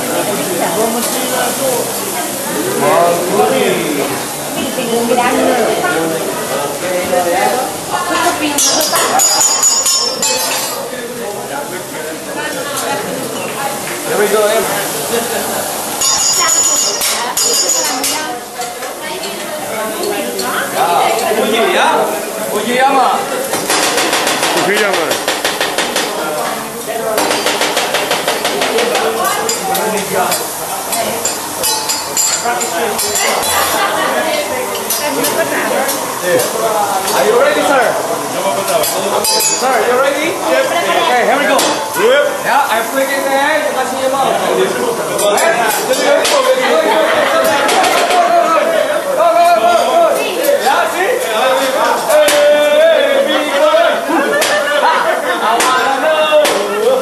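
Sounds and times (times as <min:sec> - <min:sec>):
people talking: 0:00.0 - 0:25.3, 0:25.9 - 0:57.0
restaurant chatter: 0:00.0 - 0:57.0
metal spatulas clacking on griddle: 0:16.7 - 0:18.2, 0:23.5 - 0:26.2, 0:27.2 - 0:33.6.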